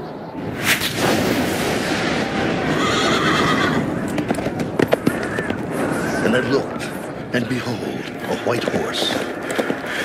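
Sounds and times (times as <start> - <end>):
horse whinnying: 2.7 - 3.9
hoof strikes: 2.9 - 6.1.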